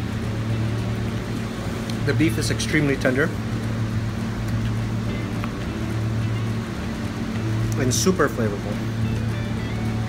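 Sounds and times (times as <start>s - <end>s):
faint background music: 0.0s - 10.0s
steady low hum: 0.0s - 10.0s.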